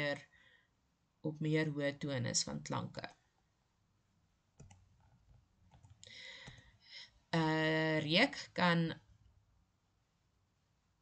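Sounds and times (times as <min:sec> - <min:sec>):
soft clicks: 0:04.6 - 0:06.7.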